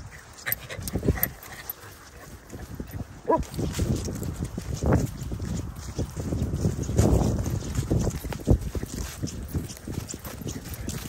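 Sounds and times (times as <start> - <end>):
dogs playing on grass: 0.0 - 11.0.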